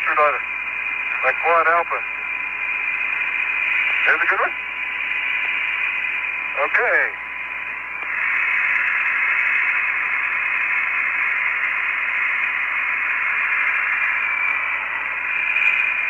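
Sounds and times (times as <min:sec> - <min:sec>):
radio channel hiss: 0:00.0 - 0:16.0.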